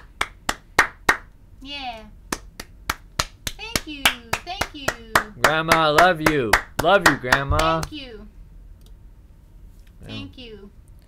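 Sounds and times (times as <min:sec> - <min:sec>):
person clapping hands: 0:00.0 - 0:01.3, 0:02.3 - 0:08.0.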